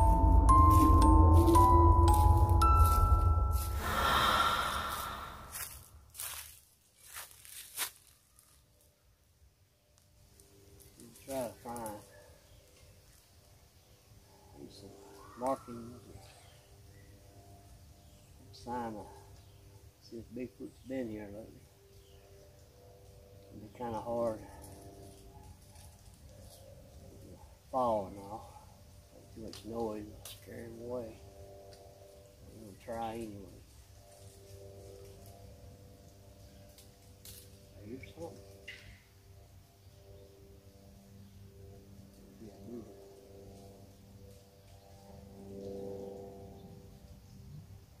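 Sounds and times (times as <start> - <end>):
background music with mallet notes: 0.0 - 4.6
low rumble: 0.0 - 6.1
footsteps in dry leaves: 0.0 - 9.0, 10.2 - 12.1, 33.4 - 38.6.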